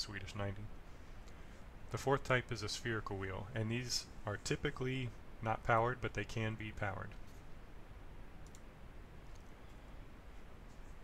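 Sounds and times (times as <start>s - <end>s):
faint steady hiss: 0.0s - 11.0s
computer mouse clicking: 8.4s - 8.7s, 9.3s - 9.5s.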